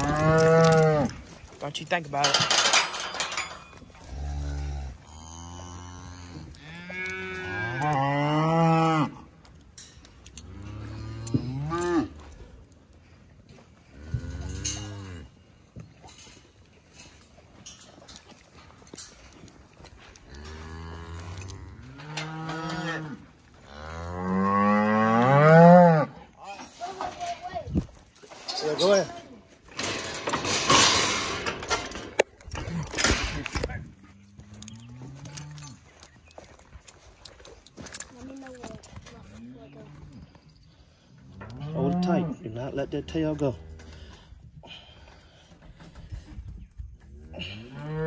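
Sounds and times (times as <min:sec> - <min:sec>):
cattle bawling: 0:00.0 - 0:01.2.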